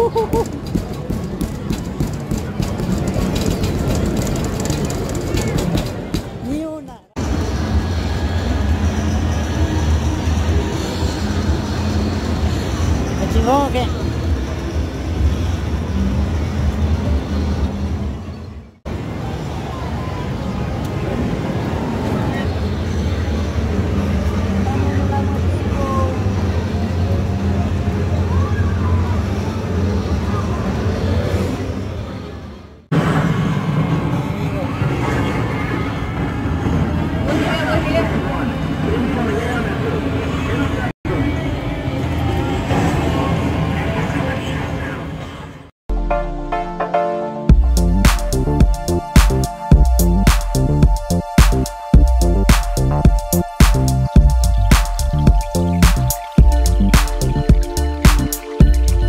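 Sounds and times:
background chatter: 0.0s - 45.7s
arcade music: 45.9s - 59.0s
electronic game sounds: 45.9s - 59.0s
steady low hum: 47.5s - 59.0s.

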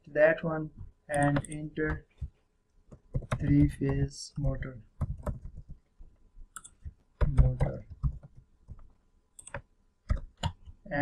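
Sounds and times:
person speaking: 0.0s - 2.3s, 3.1s - 5.8s, 6.7s - 8.3s, 10.1s - 11.0s
computer keyboard keystrokes: 2.9s - 4.0s, 5.0s - 5.8s, 6.6s - 10.7s.

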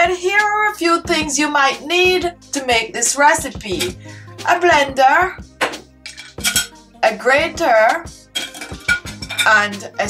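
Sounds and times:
utensils clinking on a plate: 6.1s - 6.8s, 8.4s - 9.7s.

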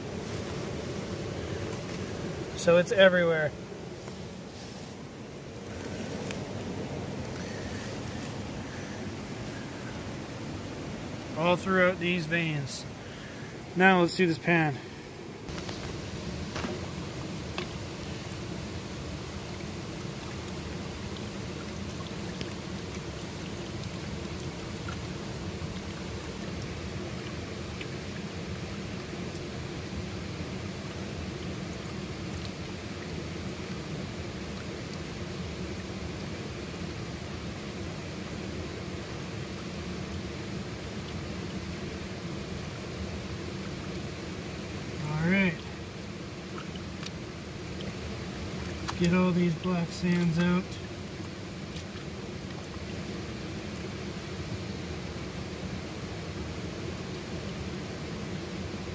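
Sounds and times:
river water rushing: 0.0s - 58.9s
faint clicks of gravel: 15.5s - 16.8s.

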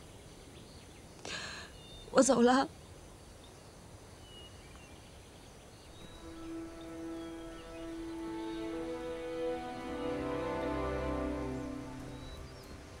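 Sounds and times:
faint bird chirps: 0.0s - 13.0s
soft music of long held notes: 5.9s - 13.0s.

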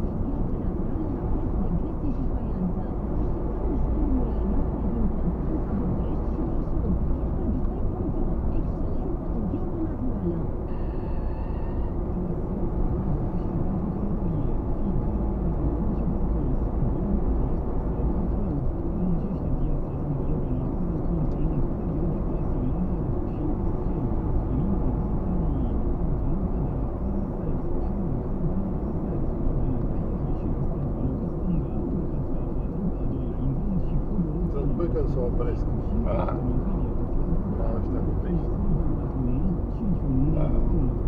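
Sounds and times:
car engine and tyres rumbling: 0.0s - 41.0s.

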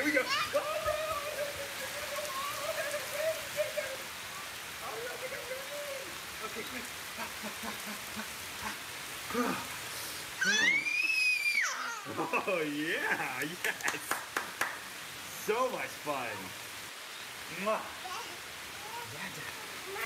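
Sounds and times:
voices: 0.0s - 9.8s, 17.4s - 20.0s
heavy rain on pavement: 0.0s - 20.0s.

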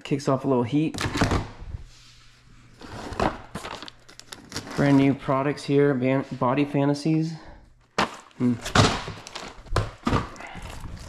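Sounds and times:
plastic rustling and clattering: 2.8s - 5.2s, 7.9s - 11.0s
cellophane clicks and crinkles: 3.5s - 4.8s, 8.1s - 11.0s.

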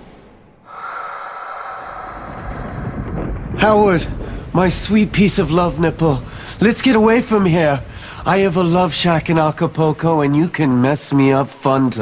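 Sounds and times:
rushing wind: 0.6s - 9.6s
rain: 1.9s - 10.6s.

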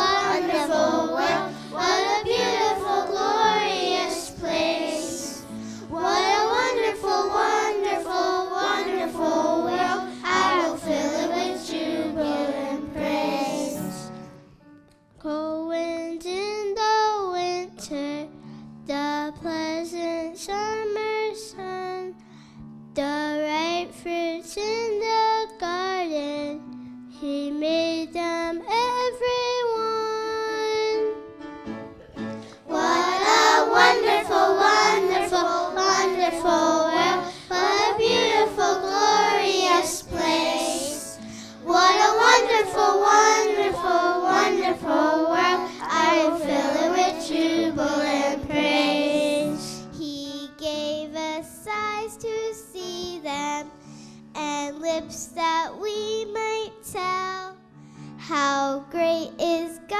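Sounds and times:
girls singing in unison: 0.0s - 14.1s, 32.6s - 49.7s
low steady accompaniment: 0.0s - 16.6s, 26.1s - 53.7s.

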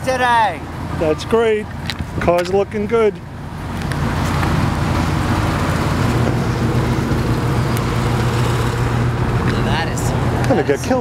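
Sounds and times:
car engines running at low revs: 0.1s - 11.0s.

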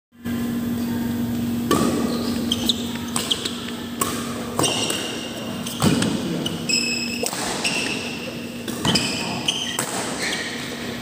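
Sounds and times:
steady low hum: 0.2s - 11.0s
racket striking shuttlecock: 1.7s - 10.8s.

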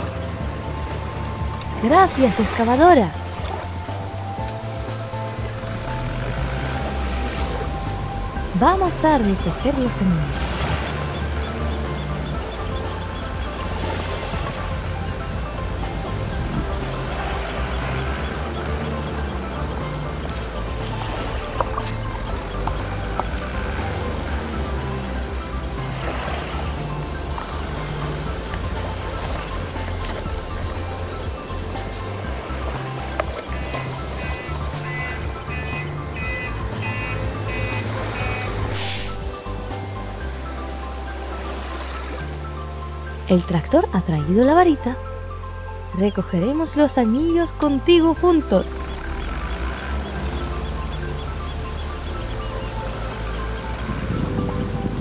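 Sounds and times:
high repeating melody: 0.0s - 40.9s, 46.0s - 54.8s
background music with bass line: 0.0s - 55.0s.

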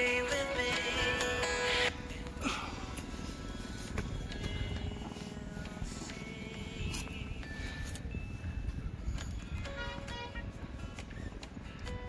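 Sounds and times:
background music with held notes: 0.0s - 12.0s.

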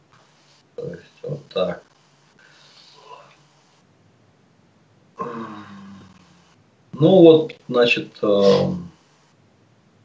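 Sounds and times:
man humming uhh: 5.2s - 6.5s, 8.4s - 8.9s.

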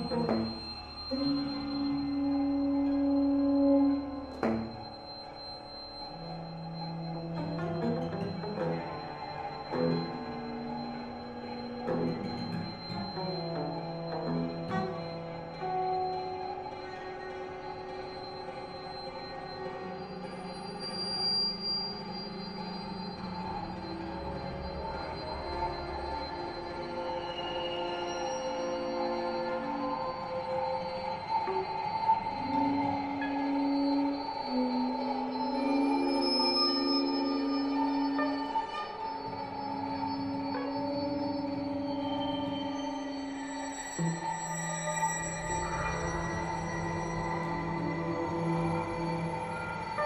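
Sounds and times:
cello bowing: 0.0s - 20.3s, 22.7s - 50.0s
high pure tones: 20.6s - 50.0s.

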